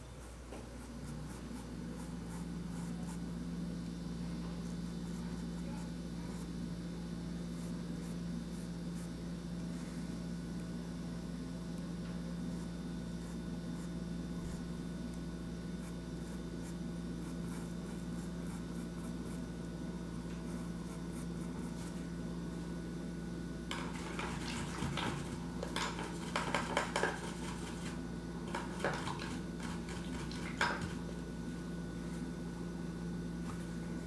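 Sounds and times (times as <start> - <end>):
low electrical hum: 0.0 - 34.0.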